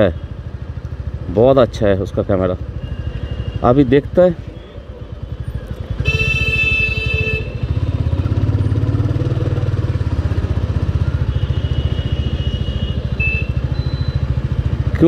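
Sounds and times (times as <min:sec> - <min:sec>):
horn sounding: 0:06.0 - 0:08.2, 0:11.2 - 0:14.3.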